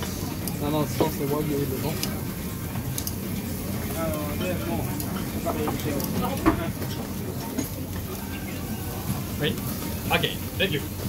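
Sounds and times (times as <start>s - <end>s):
meat sizzling on grill plate: 0.3s - 11.0s.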